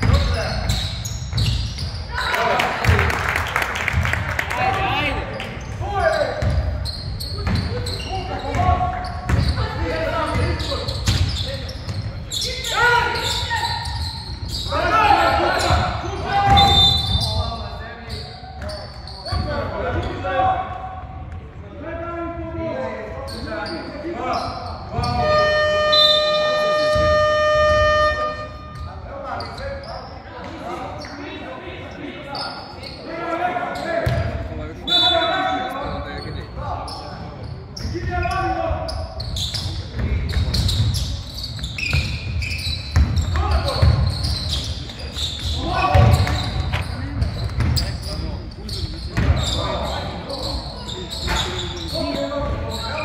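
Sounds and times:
voices echoing in hall: 0:00.0 - 0:53.0
basketball bouncing on wooden floor: 0:42.9 - 0:44.3.

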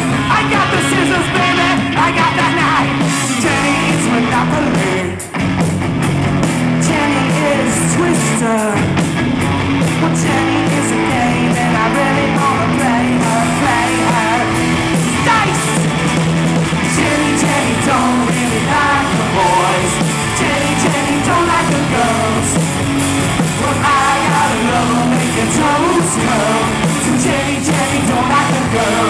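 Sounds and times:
singer shouting vocals: 0:00.0 - 0:05.2, 0:06.8 - 0:09.0, 0:10.0 - 0:16.0, 0:16.9 - 0:22.6, 0:23.6 - 0:29.0
live rock band playing: 0:00.0 - 0:29.0.

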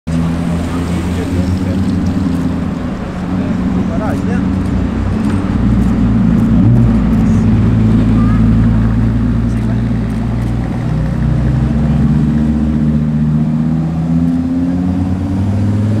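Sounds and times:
car engine running at low speed: 0:00.1 - 0:16.0
second sports car engine: 0:00.1 - 0:16.0.

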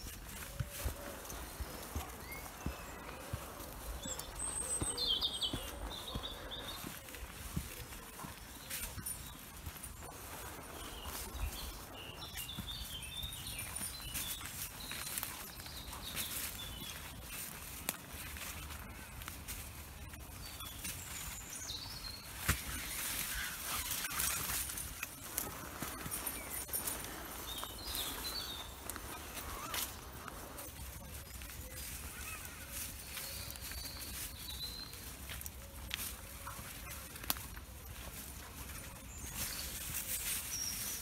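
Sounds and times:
footsteps on woodland path: 0:00.0 - 0:41.0
rustling vegetation: 0:00.0 - 0:41.0
songbird song: 0:00.0 - 0:41.0.

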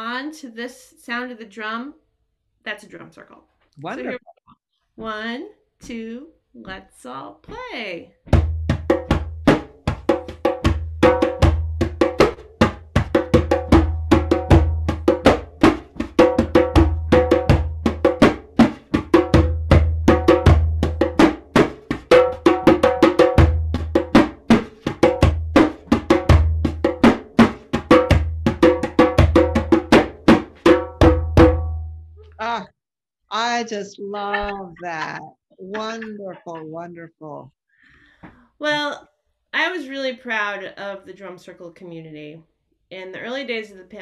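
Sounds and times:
hand drum played with hands: 0:08.3 - 0:31.9.

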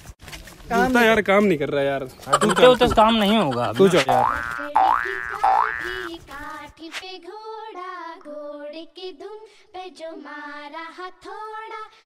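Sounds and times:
cartoon boing: 0:04.2 - 0:06.1.

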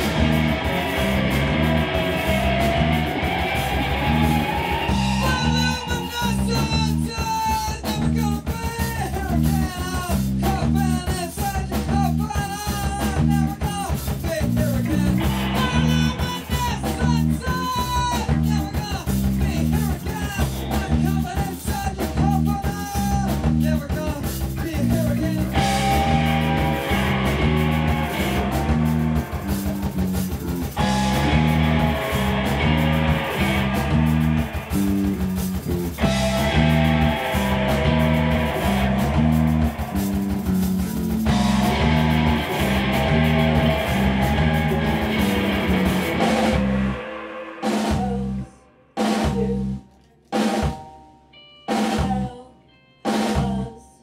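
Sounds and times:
distorted electric guitars: 0:00.0 - 0:49.4
bass riff: 0:00.0 - 0:49.9, 0:50.6 - 0:52.4
drums: 0:00.0 - 0:53.9.

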